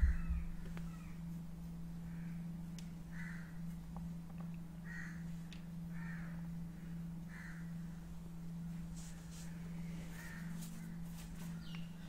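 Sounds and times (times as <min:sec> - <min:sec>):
faint bird calls: 0:00.0 - 0:03.8, 0:04.8 - 0:08.0, 0:09.3 - 0:12.0
steady low hum: 0:00.0 - 0:12.0.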